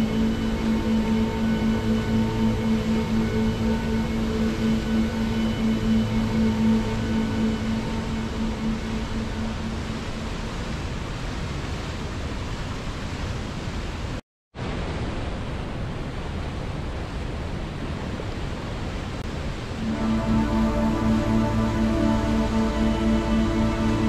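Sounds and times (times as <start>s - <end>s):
soft music: 0.0s - 10.8s, 19.7s - 24.0s.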